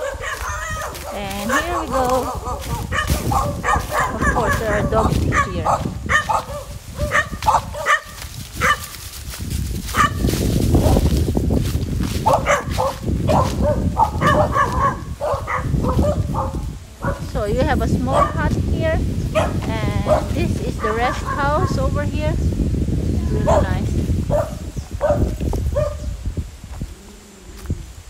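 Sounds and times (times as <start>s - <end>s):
dogs barking: 0.0s - 9.0s, 9.9s - 11.2s, 12.2s - 17.3s, 18.0s - 18.5s, 19.3s - 21.9s, 23.3s - 26.2s.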